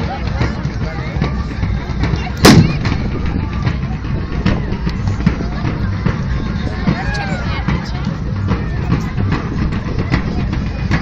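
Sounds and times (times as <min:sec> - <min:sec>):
crowd running: 0:00.0 - 0:11.0
loud gunpowder bang: 0:02.4 - 0:03.0.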